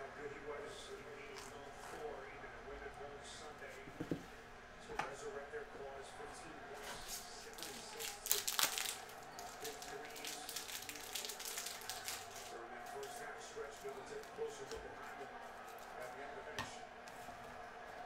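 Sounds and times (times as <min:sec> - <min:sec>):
trading cards rustling: 0:06.9 - 0:16.4.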